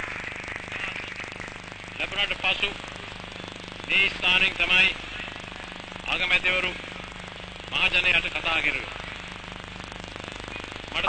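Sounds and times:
fast even crackle: 0.0 - 11.0
low hum: 0.0 - 11.0.

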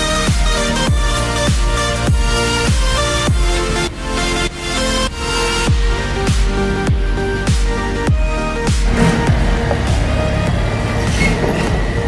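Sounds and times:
background music with bass sweeps: 0.0 - 12.0
truck diesel engine: 0.0 - 12.0.

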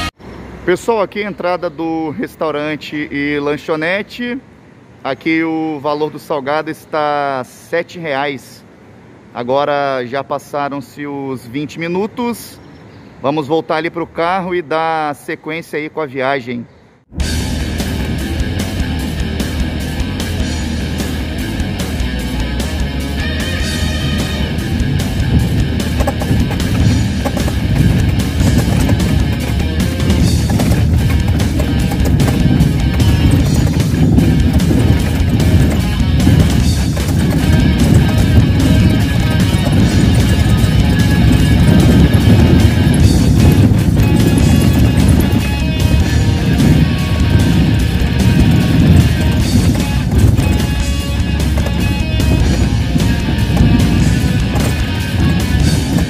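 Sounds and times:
music with heavy bass: 17.2 - 56.0.

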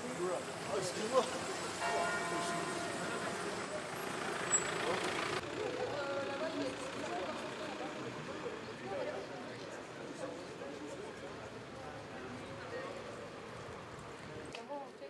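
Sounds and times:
bell ringing: 1.8 - 4.6.

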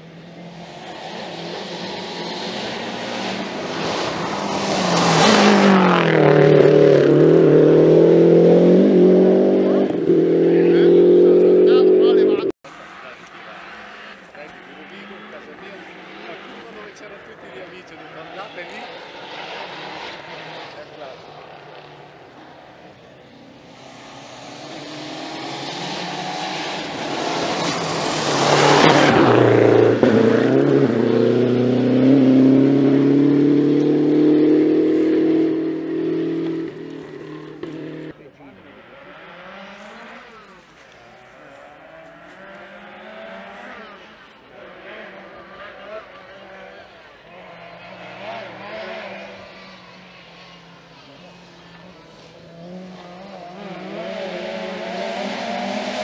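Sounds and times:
rally car engine passing: 0.1 - 56.0.

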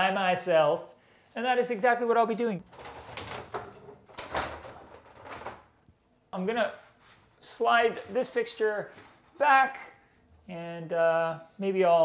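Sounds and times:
panel scraping and rustling: 2.7 - 5.7.

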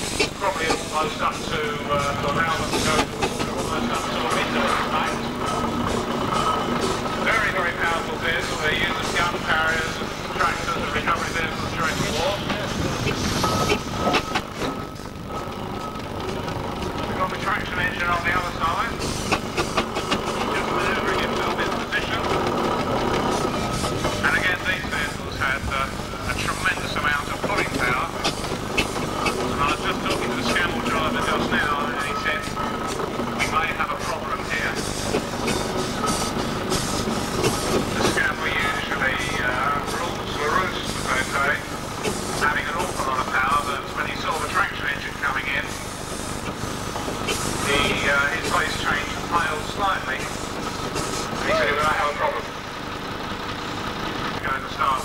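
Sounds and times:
people talking: 0.0 - 14.2, 16.9 - 19.4, 20.2 - 23.2, 24.0 - 32.7, 33.4 - 36.4, 37.4 - 45.8, 47.6 - 50.4, 51.4 - 52.6, 54.4 - 55.0
steam traction engine running: 0.0 - 55.0.

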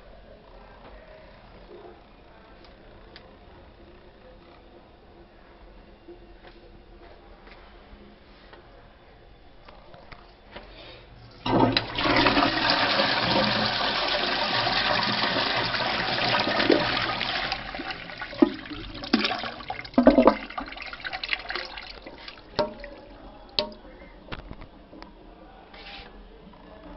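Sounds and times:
toilet flushing: 11.3 - 23.8
water trickling down bowl: 16.6 - 23.8.

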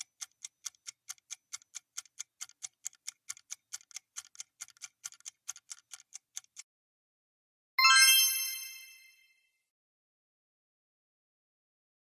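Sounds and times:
bright electronic chime: 7.8 - 9.4.

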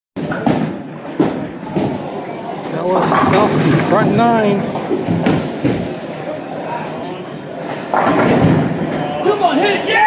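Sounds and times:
bowling alley rolling rumble: 2.9 - 6.1.

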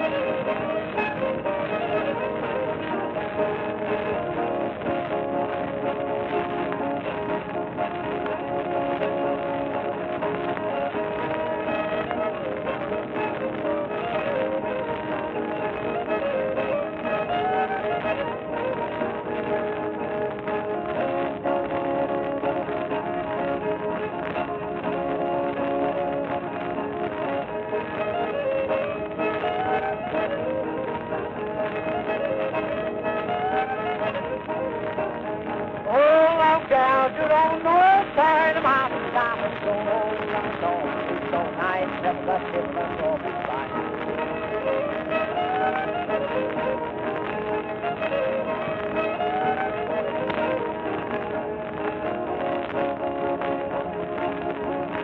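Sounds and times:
fiddle playing fast tune: 0.0 - 55.0
man singing: 35.9 - 43.4.

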